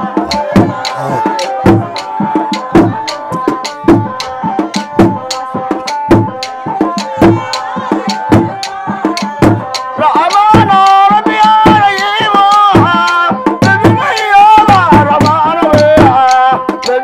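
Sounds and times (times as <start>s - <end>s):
held melody: 0.0s - 11.2s
high voice singing: 0.0s - 16.6s
wooden hand drums beating: 0.0s - 17.0s.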